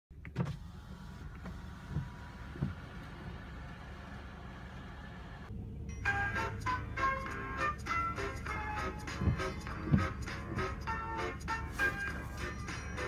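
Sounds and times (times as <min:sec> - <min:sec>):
car engine low hum: 0:00.1 - 0:13.0.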